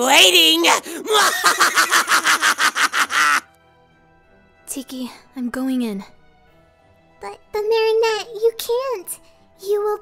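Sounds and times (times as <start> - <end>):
faint background music: 0.0 - 10.0
man laughing villainously: 1.1 - 3.4.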